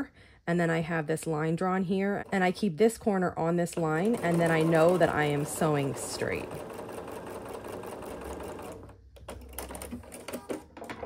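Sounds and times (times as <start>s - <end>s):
sewing machine stitching: 3.6s - 11.0s.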